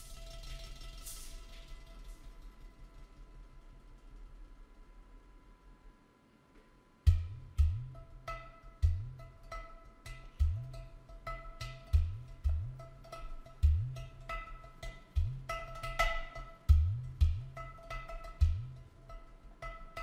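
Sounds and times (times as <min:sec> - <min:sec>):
clay pot drum played by hand: 0:07.1 - 0:20.0.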